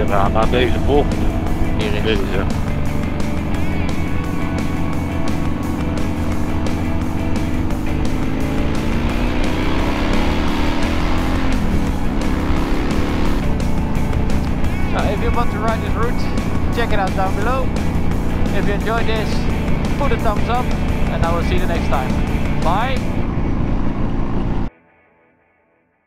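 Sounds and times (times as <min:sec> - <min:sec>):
background music with steady beat: 0:00.0 - 0:24.1
motorcycle engine revving: 0:00.0 - 0:24.7.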